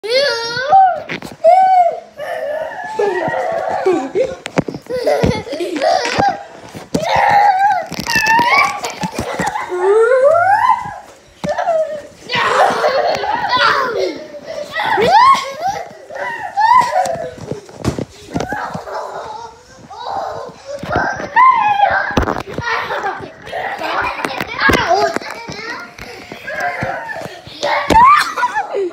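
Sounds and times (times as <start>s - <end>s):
children calling out: 0.0s - 28.9s
long rising and falling cry: 7.1s - 14.0s, 14.7s - 17.5s.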